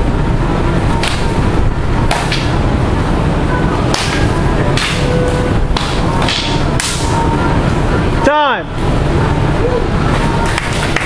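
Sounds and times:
sticks clacking: 0:03.9 - 0:05.1, 0:05.7 - 0:07.2.

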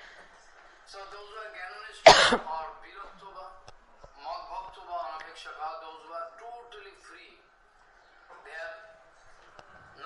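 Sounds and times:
person coughing: 0:02.0 - 0:02.5.

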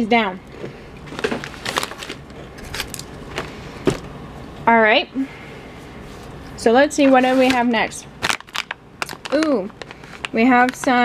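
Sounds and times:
plastic snack bags crinkling: 0:01.1 - 0:03.5, 0:07.1 - 0:11.0.

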